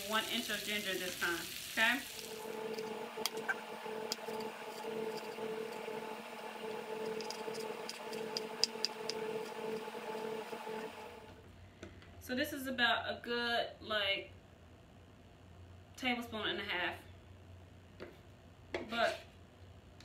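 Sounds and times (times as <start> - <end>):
steady hum: 0.0 - 12.3.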